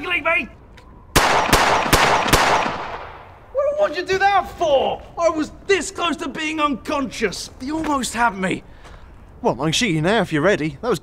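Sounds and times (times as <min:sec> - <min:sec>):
pistol shots echoing: 0:01.2 - 0:03.3.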